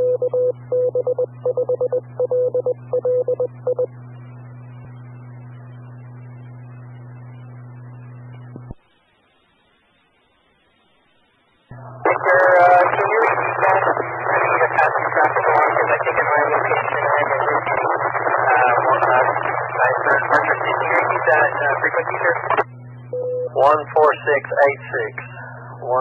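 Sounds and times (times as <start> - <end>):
steady low hum: 0.0 - 26.0
speech over radio: 11.7 - 22.7, 23.6 - 26.0.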